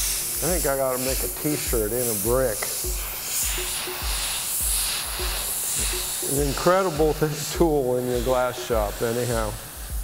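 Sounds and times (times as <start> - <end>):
background music with low beat: 0.0 - 10.0
torch flame hissing: 0.0 - 10.0.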